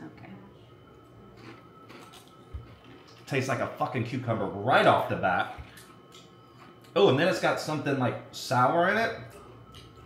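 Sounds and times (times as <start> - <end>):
crunching of chips being chewed: 1.4 - 3.2.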